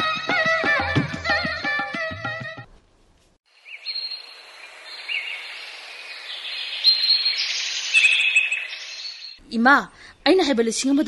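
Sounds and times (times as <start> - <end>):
steady high hiss: 3.1 - 9.2
birds chirping: 3.5 - 10.5.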